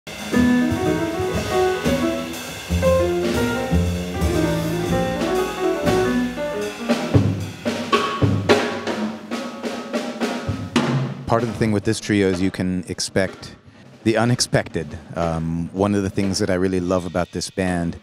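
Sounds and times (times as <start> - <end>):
upright double bass: 0.1 - 7.7
piano melody and chords: 0.1 - 8.2
drum kit and cymbals: 0.1 - 18.0.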